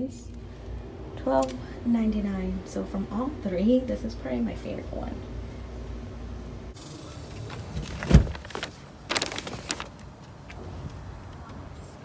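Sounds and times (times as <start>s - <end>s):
low steady hum: 0.0s - 9.8s
rustling and clatter: 7.5s - 10.6s.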